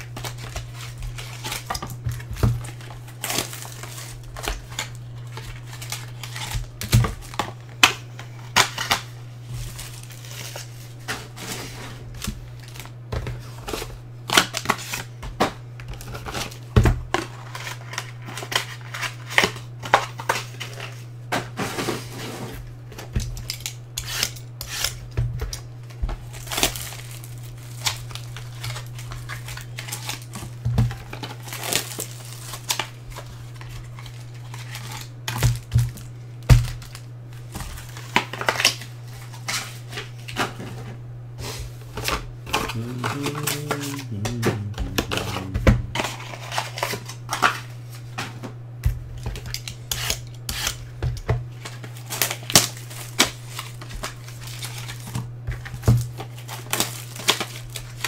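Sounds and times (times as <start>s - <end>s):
steady low hum: 40.8s - 46.8s.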